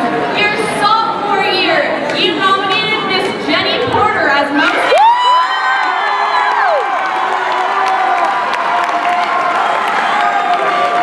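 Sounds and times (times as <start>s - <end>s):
crowd cheering and screaming: 4.6s - 11.0s.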